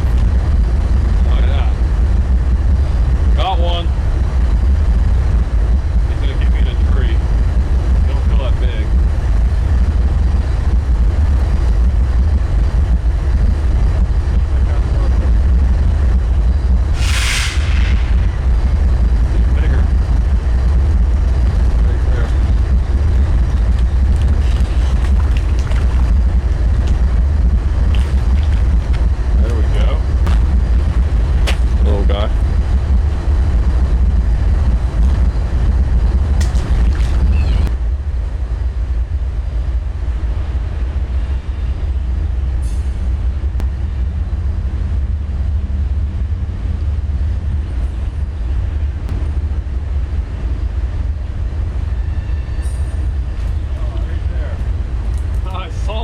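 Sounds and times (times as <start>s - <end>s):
wind buffeting microphone: 0.0s - 41.2s
brief hiss: 16.9s - 18.3s.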